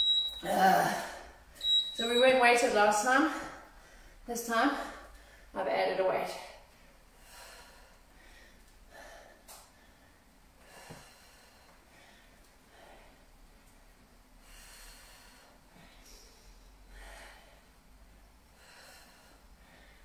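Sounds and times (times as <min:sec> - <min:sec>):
woman breathing: 0:00.4 - 0:01.5, 0:03.1 - 0:05.6, 0:06.4 - 0:13.6, 0:14.3 - 0:20.0.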